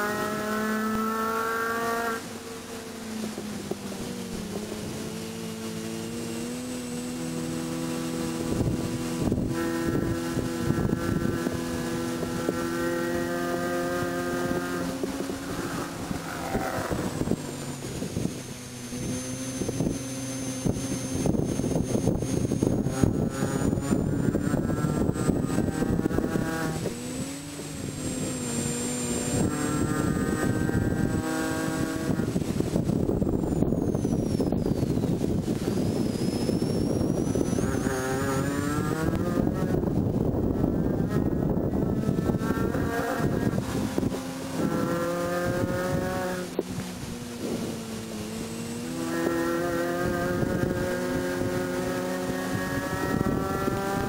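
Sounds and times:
car engine revving hard: 0.0s - 54.0s
wind and road noise: 0.0s - 54.0s.

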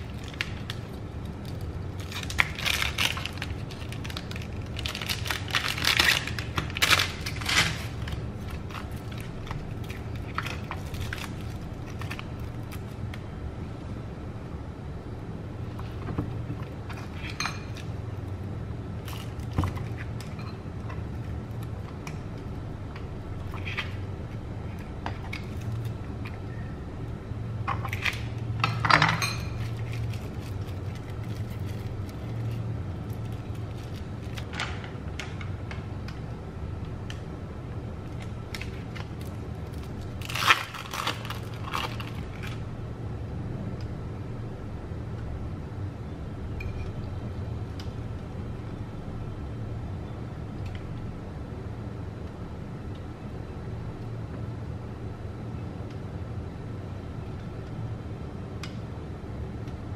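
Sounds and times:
plastic wrapper crinkling: 0.0s - 13.0s, 29.6s - 34.5s, 38.5s - 42.6s
steady low hum: 0.0s - 59.9s.

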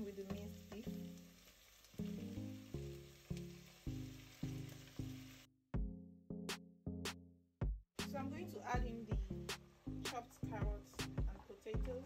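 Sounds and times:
meat and onions sizzling: 0.0s - 5.5s
background music single notes: 0.3s - 12.0s
drum beat: 5.8s - 6.0s, 7.1s - 9.7s, 10.6s - 12.0s.

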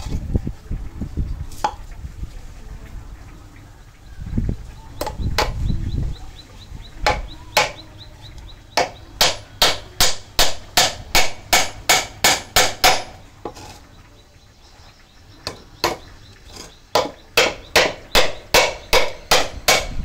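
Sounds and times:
hammer striking chisel into wood: 7.0s - 7.9s, 8.8s - 13.2s, 17.0s - 20.0s.

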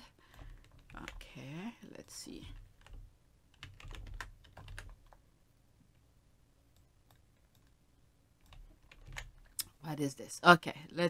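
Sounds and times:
faint keyboard typing and clicks: 0.2s - 1.4s, 2.0s - 5.2s, 6.7s - 7.8s, 8.4s - 9.7s.

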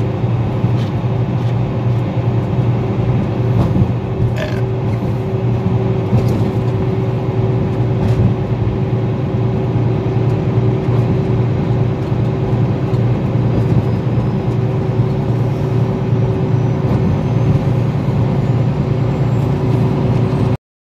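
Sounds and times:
vehicle cabin road and engine drone: 0.0s - 20.6s.

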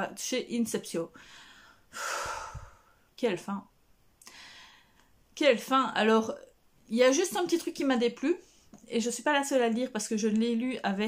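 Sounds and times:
woman breathing: 1.1s - 3.1s, 4.2s - 5.2s.

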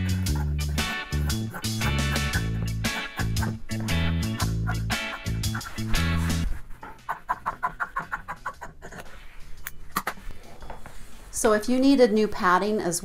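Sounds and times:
guitar and bass music: 0.0s - 7.1s.

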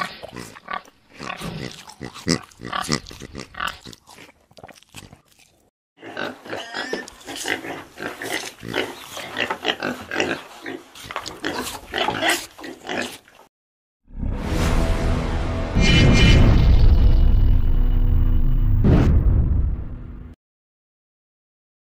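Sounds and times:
pigs grunting and oinking: 0.0s - 5.3s, 6.0s - 13.4s.

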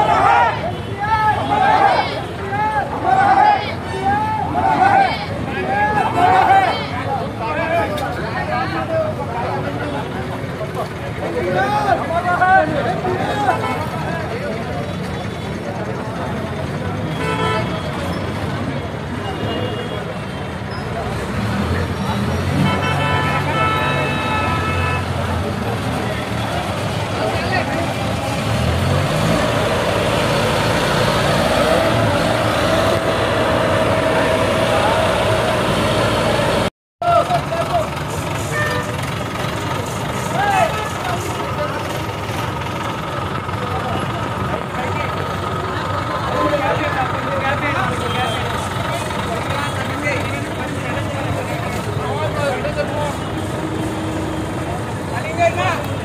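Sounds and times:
crowd voices: 0.0s - 56.0s
vehicle horn blasts: 22.6s - 25.1s
crane engine running: 37.3s - 47.4s.

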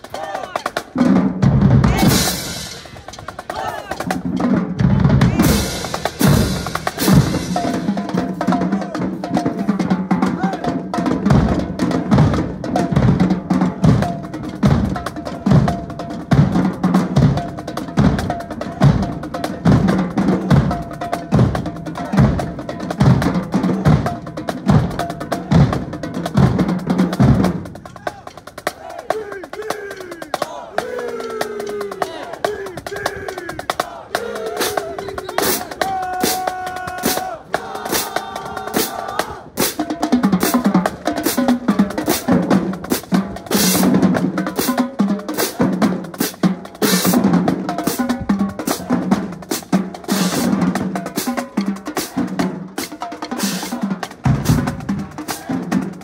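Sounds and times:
voices: 0.0s - 1.0s, 1.8s - 10.9s, 18.2s - 24.2s, 26.9s - 39.7s, 55.1s - 56.0s
marching drumline: 0.0s - 56.0s
heavy bass drum strokes: 1.3s - 9.3s.

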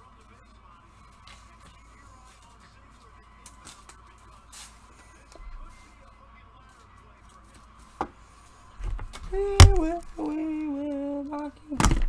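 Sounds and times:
steady low hum: 4.0s - 7.2s.

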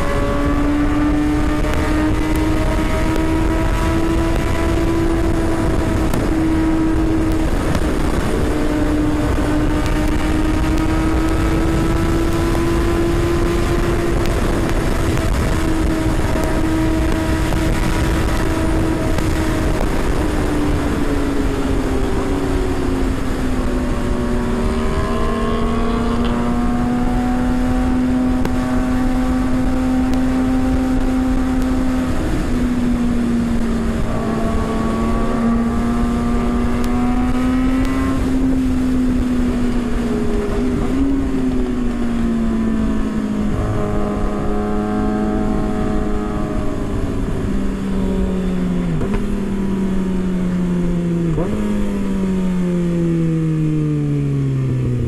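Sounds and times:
motorcycle engine at speed: 0.0s - 55.0s
wind noise on microphone: 0.0s - 55.0s.

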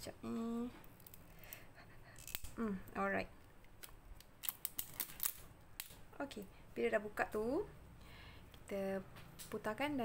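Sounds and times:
plastic seal crackling as torn off: 3.8s - 6.0s.

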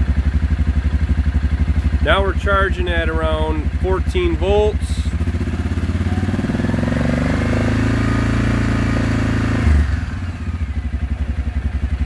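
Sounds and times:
engine revving and idling: 0.0s - 12.0s.

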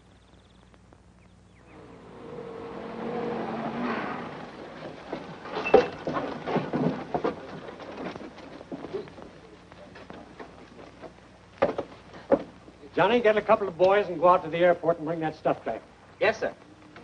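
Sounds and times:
jeep engine running: 1.5s - 11.3s
knocks and thumps: 4.6s - 9.4s, 10.0s - 12.8s.

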